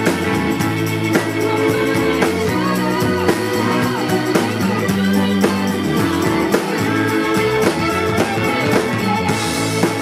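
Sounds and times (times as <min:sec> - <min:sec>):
bass guitar: 0:00.0 - 0:10.0
drum beat: 0:00.0 - 0:10.0
electric guitar: 0:00.0 - 0:10.0
woman singing: 0:00.8 - 0:10.0.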